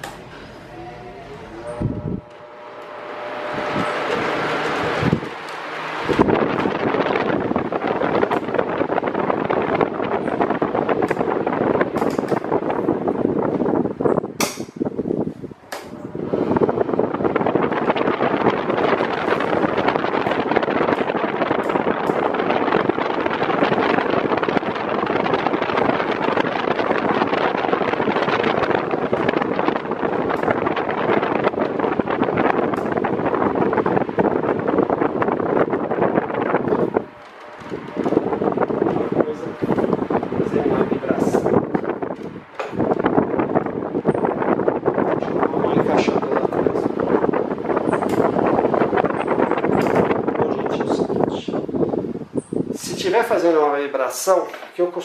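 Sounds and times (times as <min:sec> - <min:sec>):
electric fan running: 0:00.0 - 0:55.0.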